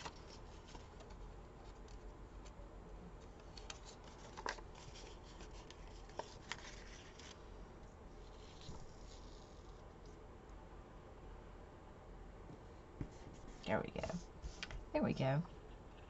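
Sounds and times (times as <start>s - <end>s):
paper crinkles: 0.0s - 2.0s, 3.2s - 7.4s, 8.2s - 9.8s
paper sticker rustling: 3.4s - 7.4s.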